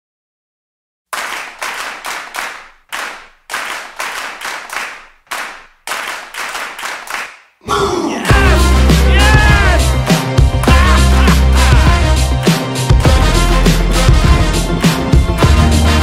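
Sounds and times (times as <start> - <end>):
rhythmic hand claps: 1.1 - 7.5, 8.3 - 16.0
song with heavy bass and singing: 7.7 - 16.0.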